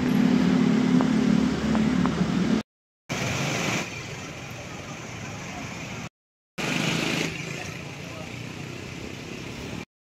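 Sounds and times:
street traffic: 0:00.0 - 0:09.9.

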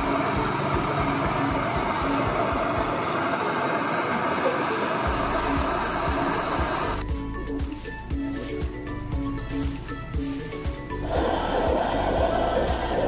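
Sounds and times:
background music: 0:00.0 - 0:03.4, 0:05.0 - 0:13.0
butane torch hissing: 0:00.0 - 0:13.0.

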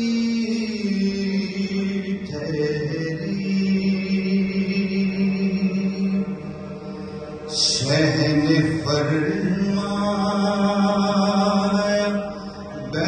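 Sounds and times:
man chanting a lament: 0:07.5 - 0:13.0.

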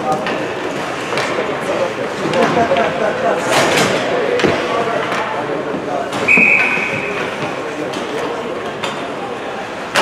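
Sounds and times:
voices echoing in rink: 0:00.0 - 0:10.0.

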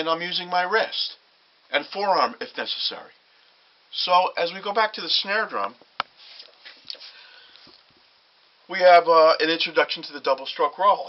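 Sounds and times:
faint rustling and shuffling: 0:04.8 - 0:08.2.

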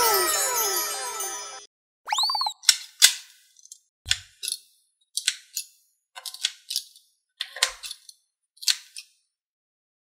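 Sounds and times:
rising and falling sound effect: 0:00.0 - 0:02.6.

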